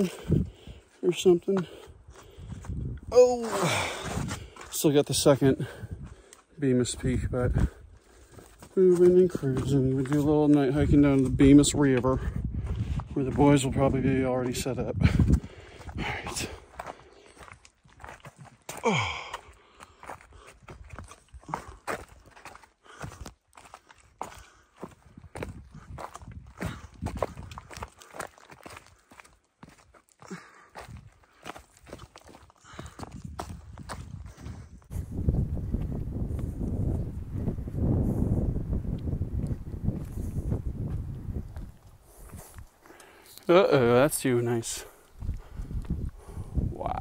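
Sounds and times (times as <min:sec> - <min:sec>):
footsteps on rocky trail: 0:00.0 - 0:47.0.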